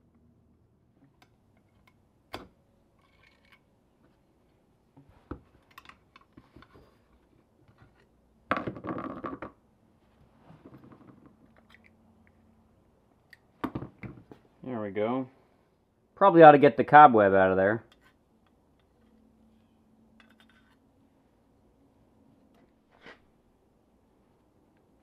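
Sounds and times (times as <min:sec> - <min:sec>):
small metal clicks and knocks: 0:03.0 - 0:03.7, 0:05.6 - 0:06.7, 0:20.1 - 0:20.8.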